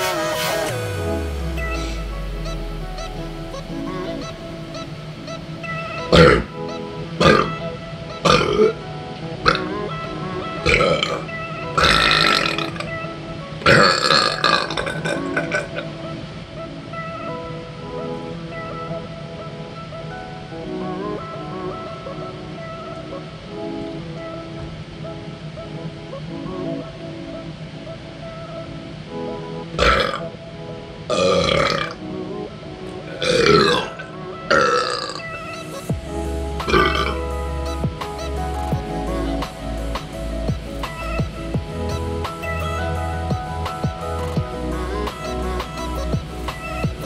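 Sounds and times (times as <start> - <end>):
background music: 0.0 - 47.0
man burping loudly: 29.8 - 30.2, 31.1 - 32.0.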